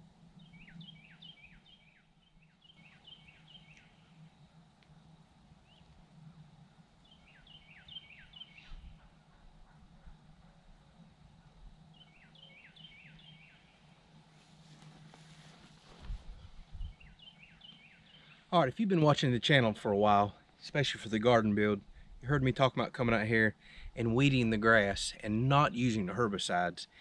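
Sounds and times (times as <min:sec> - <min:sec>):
steady low hum: 0:00.0 - 0:27.0
distant songbird whistling: 0:00.4 - 0:04.2, 0:07.0 - 0:10.2, 0:12.0 - 0:13.7, 0:16.8 - 0:18.4.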